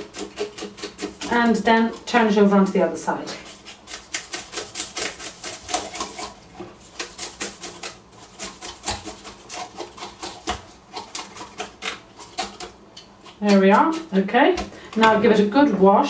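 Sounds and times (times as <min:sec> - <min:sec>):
knife scraping fish scales: 0:00.0 - 0:15.2.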